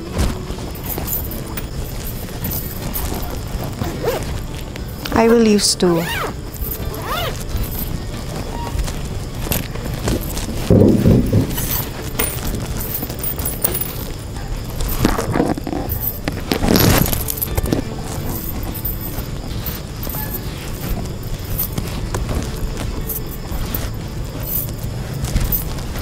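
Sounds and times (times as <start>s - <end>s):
background music: 0.0s - 26.0s
bangles clinking: 0.0s - 26.0s
fabric rustling: 0.0s - 26.0s.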